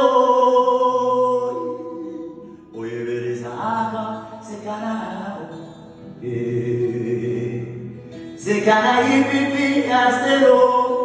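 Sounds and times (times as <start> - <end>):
acoustic guitar: 0.0 - 11.0
man singing long notes: 0.0 - 11.0.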